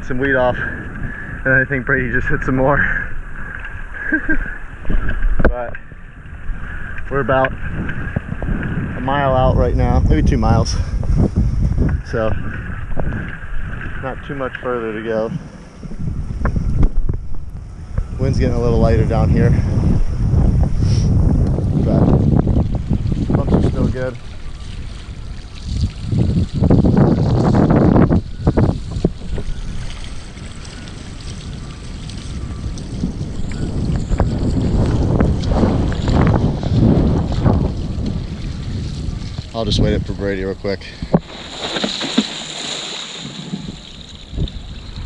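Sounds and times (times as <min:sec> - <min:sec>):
wind buffeting microphone: 0:00.0 - 0:45.0
rushing water: 0:22.5 - 0:40.2, 0:41.0 - 0:45.0.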